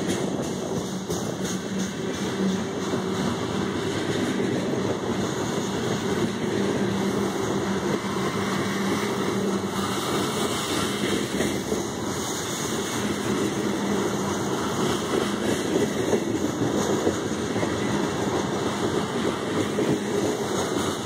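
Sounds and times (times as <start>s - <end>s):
freight train wheel rumble: 0.0s - 21.0s.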